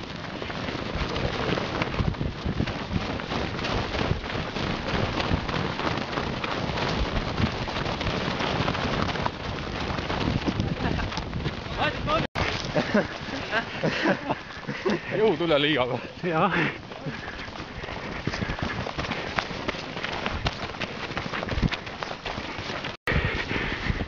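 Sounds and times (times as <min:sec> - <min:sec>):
wind on microphone: 0:00.0 - 0:15.0, 0:16.6 - 0:24.0
runners crunching through snow: 0:00.0 - 0:24.0
voices: 0:10.6 - 0:20.1.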